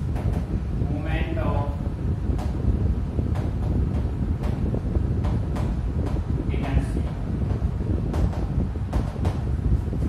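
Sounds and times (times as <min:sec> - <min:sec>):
low microphone rumble: 0:00.0 - 0:10.0.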